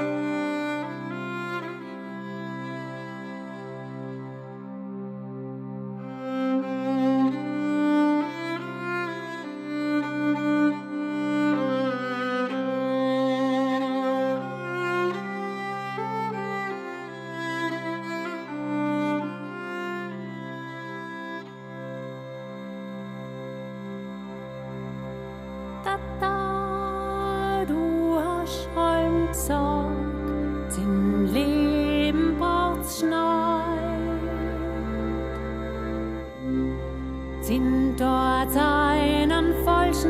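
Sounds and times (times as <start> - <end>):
violin melody: 0.0 - 40.0
button accordion: 13.6 - 40.0
zither: 25.8 - 40.0.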